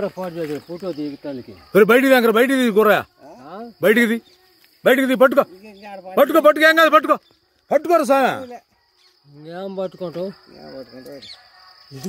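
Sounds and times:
high-pitched insect trill: 0.0 - 12.0.

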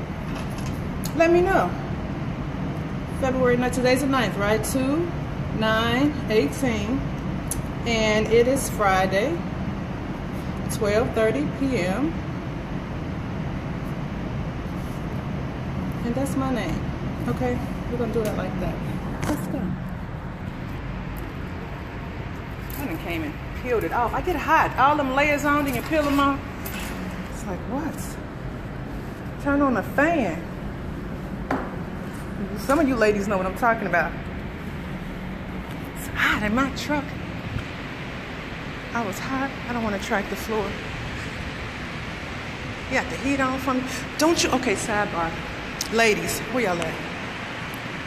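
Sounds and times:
steady rushing noise: 8.3 - 48.0.

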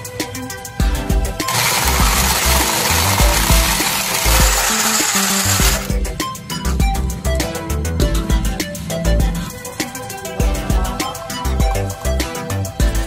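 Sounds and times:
background music with steady beat: 0.0 - 13.0
bottle blender running: 1.4 - 5.9.

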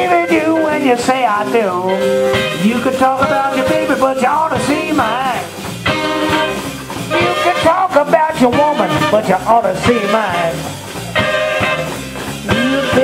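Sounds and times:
bass: 0.0 - 13.0
drums: 0.0 - 13.0
electric guitar: 0.0 - 13.0
saxophone: 0.0 - 13.0.

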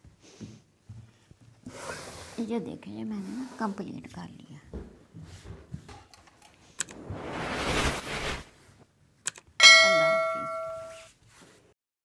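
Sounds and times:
whoosh: 6.8 - 8.6
bell ding: 9.6 - 11.1.

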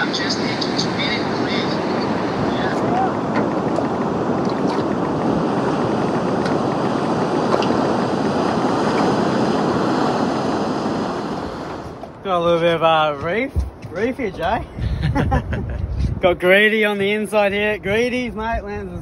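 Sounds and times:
surf breaking: 0.0 - 14.3.

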